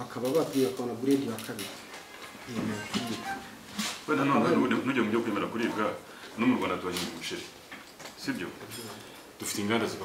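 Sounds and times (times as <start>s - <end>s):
person speaking: 0.0s - 7.6s.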